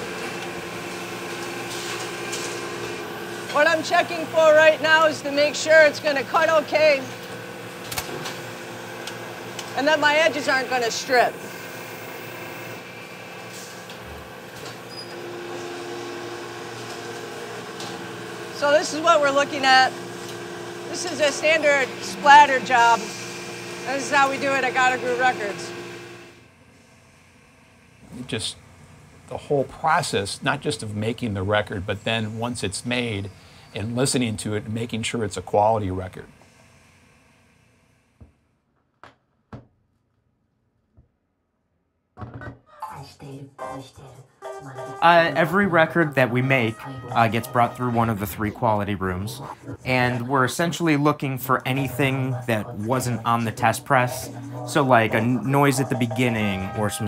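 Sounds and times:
machinery humming: 0.0s - 38.0s, 45.0s - 57.0s.

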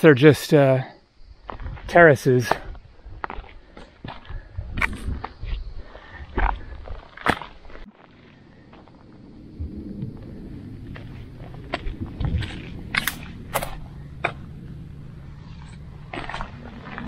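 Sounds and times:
wind rumble on microphone: 1.2s - 7.1s, 8.3s - 17.0s
footsteps on stony trail: 1.4s - 9.2s, 10.9s - 14.6s, 15.4s - 17.0s.

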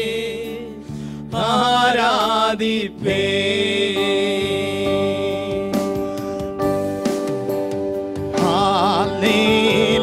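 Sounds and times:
man singing into microphone: 0.0s - 6.1s, 8.3s - 10.0s.

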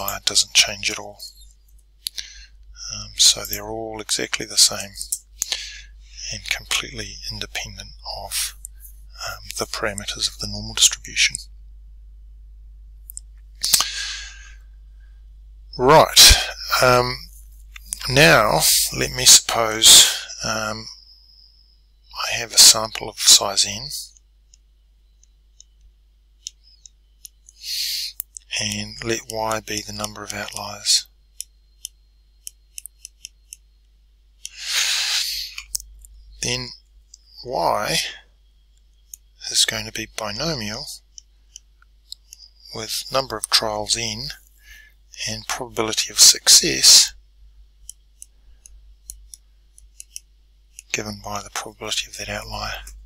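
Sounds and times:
pen stylus clicking on tablet: 31.8s - 33.6s.

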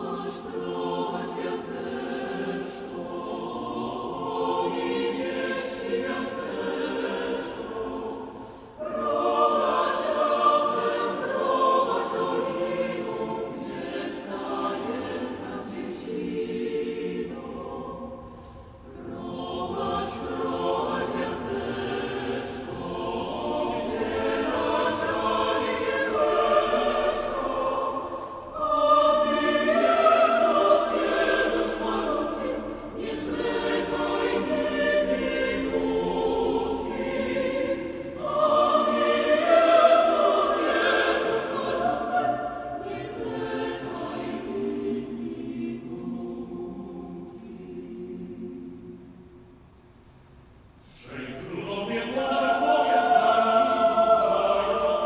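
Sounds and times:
mixed choir singing carol: 0.0s - 49.6s, 50.8s - 55.0s.

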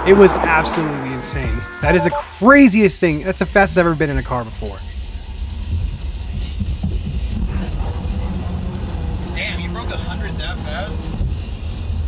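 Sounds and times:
road and wind noise in car: 4.6s - 12.0s.

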